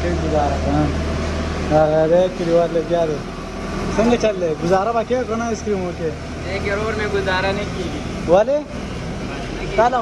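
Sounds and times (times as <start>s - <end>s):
steady low hum: 0.0s - 10.0s
voices speaking: 0.0s - 10.0s.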